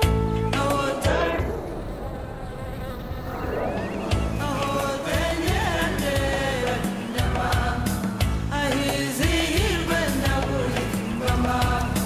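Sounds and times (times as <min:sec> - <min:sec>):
bee buzzing: 0:00.6 - 0:12.0.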